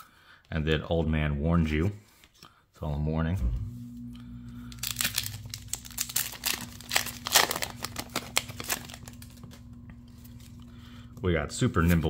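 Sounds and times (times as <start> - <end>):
faint steady hum: 3.4 - 12.0
foil wrapper tearing and crinkling: 4.7 - 11.0.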